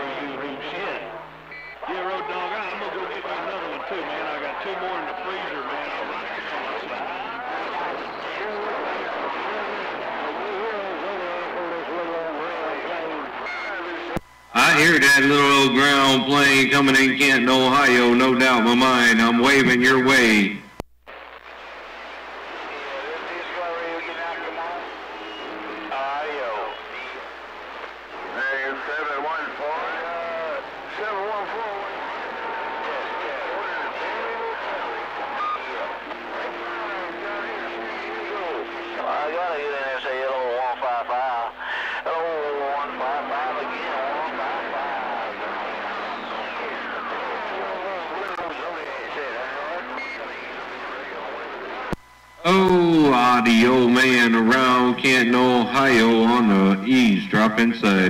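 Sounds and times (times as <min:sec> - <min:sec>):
garbled radio voices: 0:00.0 - 0:58.0
radio hiss and static: 0:00.0 - 0:58.0
radio whistles: 0:00.9 - 0:10.2, 0:10.9 - 0:56.6.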